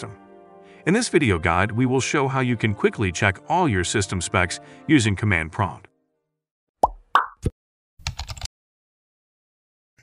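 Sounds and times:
pitched pop sound effects: 0:06.8 - 0:07.6.

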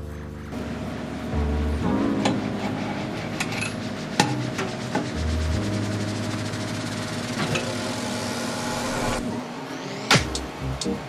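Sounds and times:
stepper motor humming: 0:00.0 - 0:11.0.

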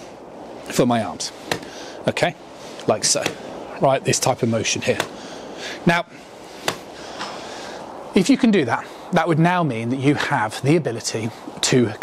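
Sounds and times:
low background hiss: 0:00.0 - 0:12.0
golf club swing: 0:01.4 - 0:01.8, 0:03.2 - 0:03.6, 0:04.9 - 0:05.2, 0:06.5 - 0:07.4
clubhead tapping turf mat: 0:01.5 - 0:01.7, 0:03.2 - 0:03.4, 0:05.0 - 0:05.2, 0:06.6 - 0:06.9.

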